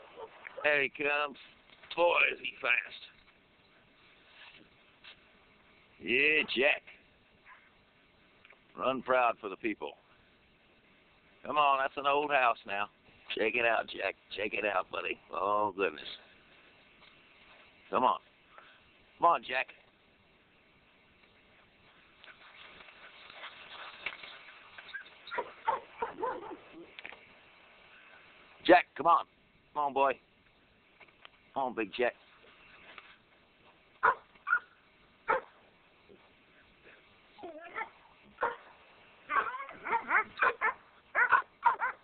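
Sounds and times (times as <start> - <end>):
dog feet rustling on grass: 21.1 - 27.4
dog barking: 25.3 - 26.8, 34.0 - 34.7, 35.3 - 35.6, 37.6 - 38.7, 39.3 - 42.0.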